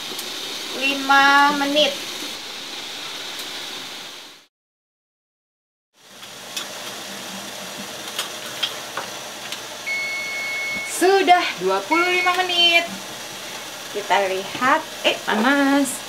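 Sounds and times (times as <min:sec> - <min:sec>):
steamer hissing: 0:09.8 - 0:14.0
long timer beep: 0:09.9 - 0:11.0, 0:11.9 - 0:12.5.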